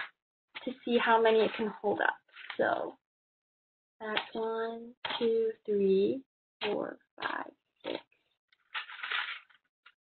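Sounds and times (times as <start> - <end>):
paper rustling: 8.6 - 10.0.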